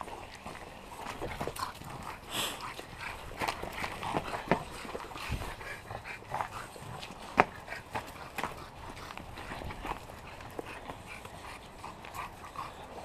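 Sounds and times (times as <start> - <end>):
footfalls on mulch and pavers: 0.0 - 12.7
dog noises: 0.0 - 13.0.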